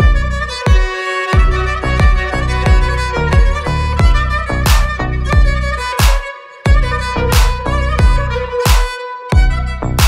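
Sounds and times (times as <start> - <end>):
deep bass drum hits: 0.0 - 0.8, 1.4 - 5.8, 6.7 - 8.3
melody over a beat: 0.0 - 10.0.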